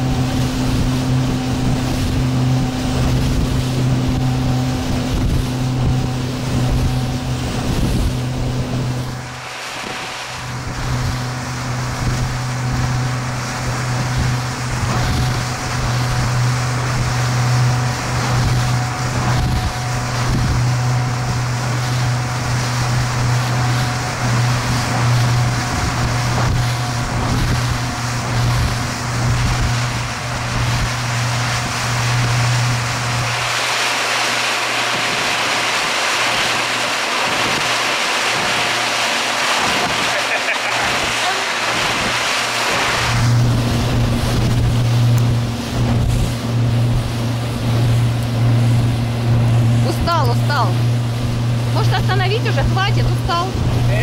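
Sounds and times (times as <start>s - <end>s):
outboard motor droning: 0.0s - 54.0s
rushing water from wake: 0.0s - 54.0s
wind: 0.0s - 54.0s.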